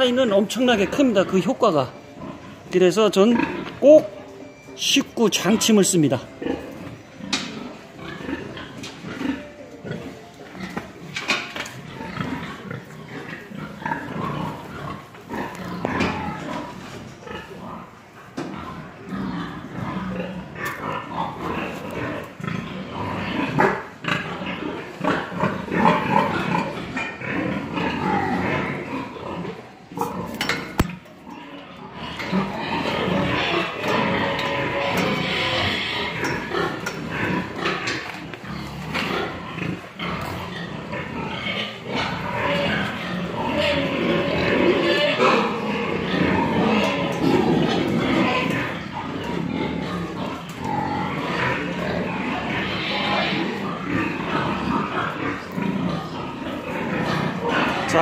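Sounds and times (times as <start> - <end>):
pigs grunting and squealing: 0.0 - 58.0.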